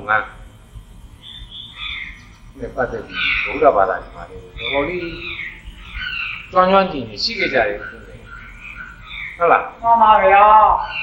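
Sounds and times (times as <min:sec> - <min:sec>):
man giving a sermon: 0:06.5 - 0:08.3.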